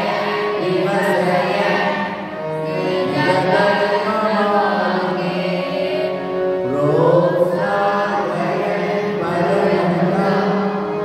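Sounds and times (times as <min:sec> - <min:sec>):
devotional chant-like singing: 0:00.0 - 0:11.0.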